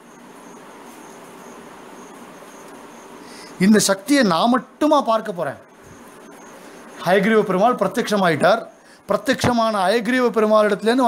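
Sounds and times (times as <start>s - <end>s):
faint background hiss: 0.0s - 11.0s
high pulsing chirp: 0.0s - 11.0s
man talking: 3.6s - 5.7s, 7.0s - 11.0s.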